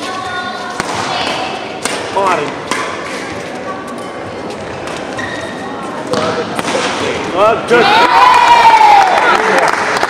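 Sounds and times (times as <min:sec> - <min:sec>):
hall background noise: 0:00.0 - 0:10.0
racket hitting shuttlecock: 0:00.7 - 0:03.4, 0:06.1 - 0:07.1
shoe squeak: 0:05.0 - 0:06.0.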